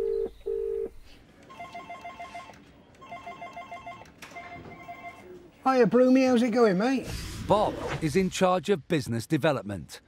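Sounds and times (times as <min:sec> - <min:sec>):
ringback tone beeps: 0:01.5 - 0:05.2
desk phone ringing: 0:01.5 - 0:05.3.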